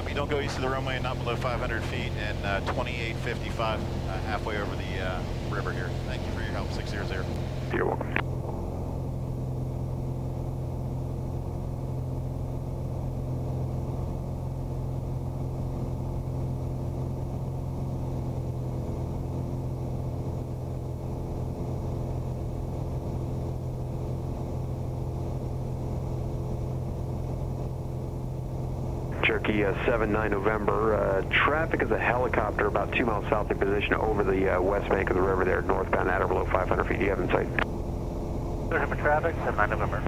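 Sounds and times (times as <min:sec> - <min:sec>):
radio voice: 0:00.0 - 0:08.2, 0:29.2 - 0:37.6, 0:38.7 - 0:40.0
propeller plane engine drone: 0:00.0 - 0:40.0.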